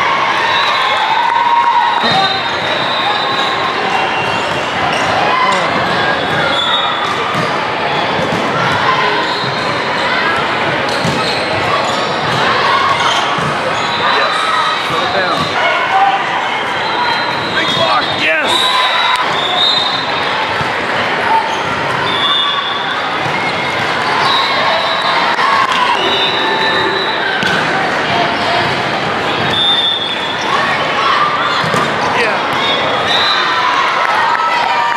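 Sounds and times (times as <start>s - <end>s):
echoing din of voices: 0.0s - 34.9s
sneakers squeaking on hardwood: 10.9s - 12.2s.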